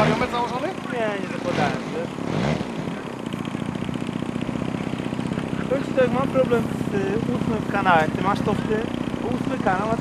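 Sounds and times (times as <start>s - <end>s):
small engine running: 0.0s - 10.0s.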